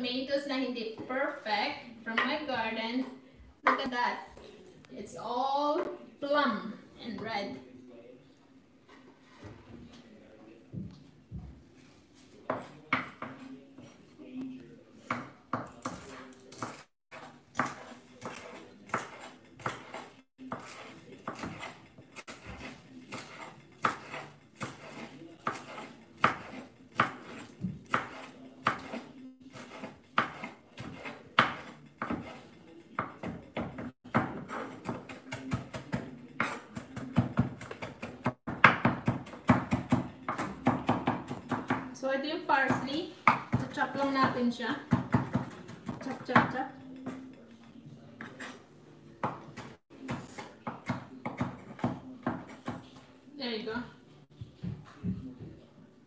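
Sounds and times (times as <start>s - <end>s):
knife chopping on wooden board: 15.1s - 32.4s, 33.0s - 41.9s, 44.9s - 47.2s, 49.2s - 52.8s.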